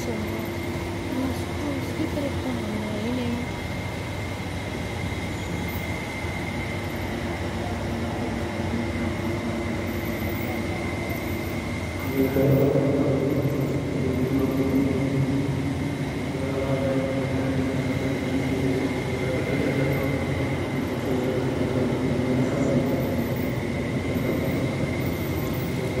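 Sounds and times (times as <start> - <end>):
faint steady high tone: 5.0 - 15.0
man chanting over loudspeaker: 12.1 - 15.4, 16.3 - 23.0.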